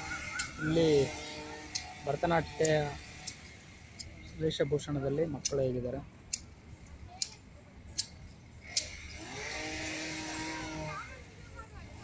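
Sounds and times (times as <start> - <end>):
bird calling short notes: 0.0 - 1.3.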